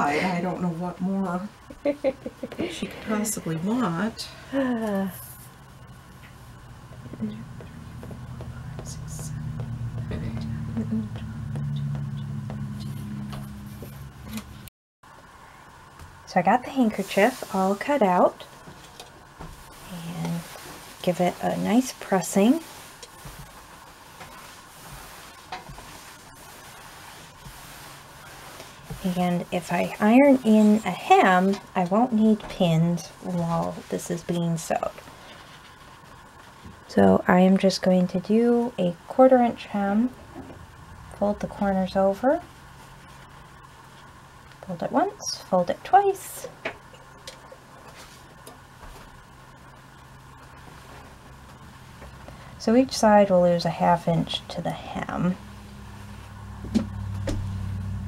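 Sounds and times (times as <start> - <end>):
low hum: 0.0 - 18.6, 35.7 - 45.7, 46.9 - 58.0
iron hissing on fabric: 19.4 - 31.5.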